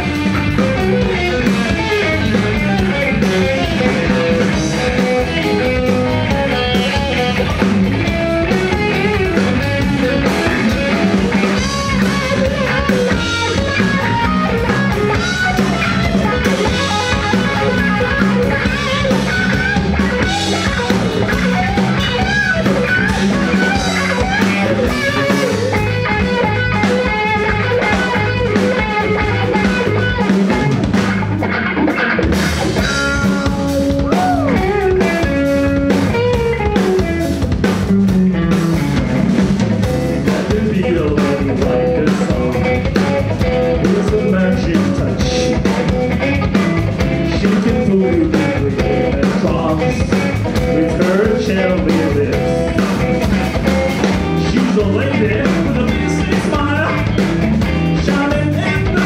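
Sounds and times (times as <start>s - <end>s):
drum kit: 0.0s - 59.0s
electric bass: 0.0s - 59.0s
electric guitar lead with bends: 0.0s - 59.0s.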